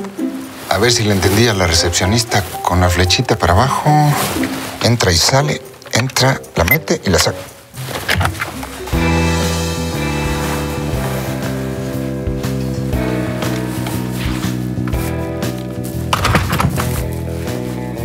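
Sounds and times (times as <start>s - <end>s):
sustained shifting chords music: 8.6s - 16.1s.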